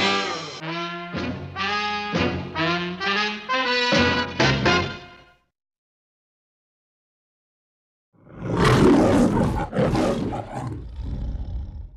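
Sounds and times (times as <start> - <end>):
lion roaring: 8.2 - 11.9.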